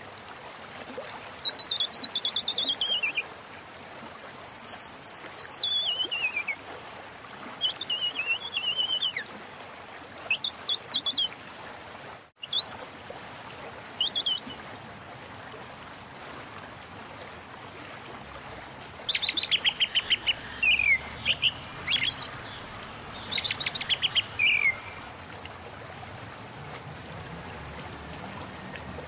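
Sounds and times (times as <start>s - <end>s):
songbird trilling: 1.4s - 3.2s, 4.4s - 6.6s, 7.6s - 9.2s, 10.3s - 11.3s, 14.0s - 14.4s, 19.1s - 25.1s
steady hiss: 19.1s - 25.1s.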